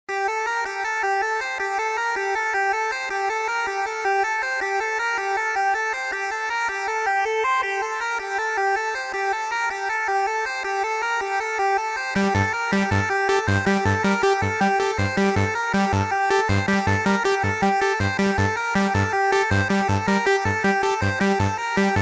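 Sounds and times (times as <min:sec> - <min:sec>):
repeating synthesizer figure: 0:09.8 - 0:22.0.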